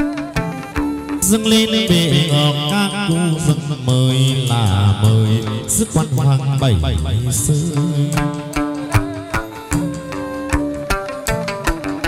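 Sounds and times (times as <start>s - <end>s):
plucked lute notes: 0.0s - 12.0s
melismatic sung chant: 1.3s - 8.8s.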